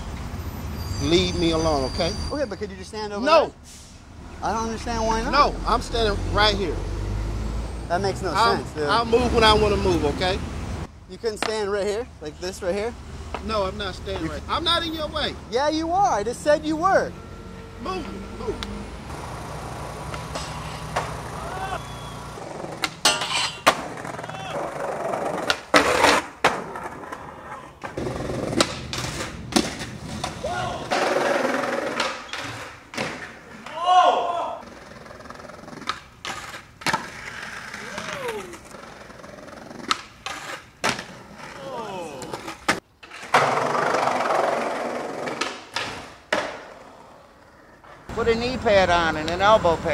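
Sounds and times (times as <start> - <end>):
skateboard wheels rolling on concrete: 8.2 - 16.6, 17.8 - 49.9
voices calling out: 14.2 - 22.4, 24.0 - 24.8, 30.3 - 31.6, 37.6 - 39.5, 41.3 - 42.8
skateboard grinding on rail: 19.1 - 33.6, 34.6 - 48.1
skateboard tail pops and landings: 39.8 - 41.1, 42.6 - 46.8.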